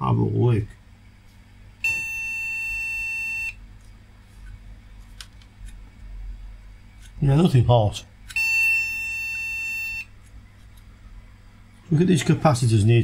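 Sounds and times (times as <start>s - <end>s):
long high-pitched beep: 1.8s - 3.6s, 8.4s - 10.1s.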